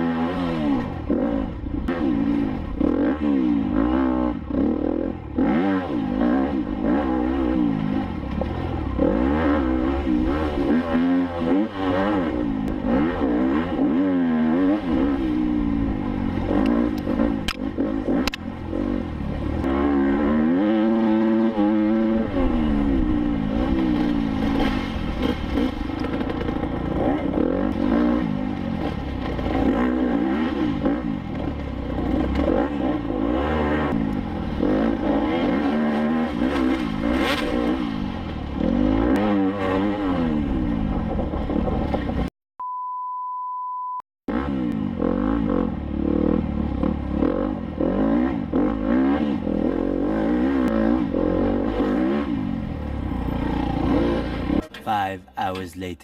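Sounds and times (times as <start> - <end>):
motorcycle engine revving: 0.0 - 42.3, 44.3 - 54.8.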